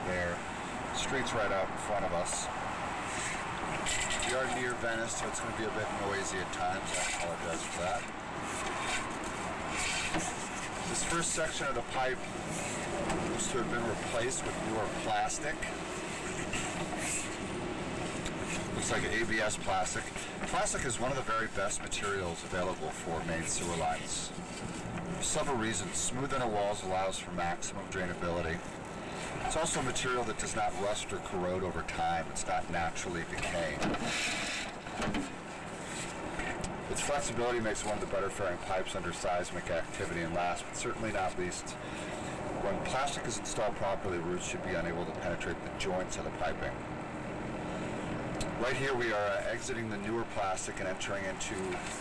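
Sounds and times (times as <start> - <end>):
street traffic hum: 0.0 - 52.0.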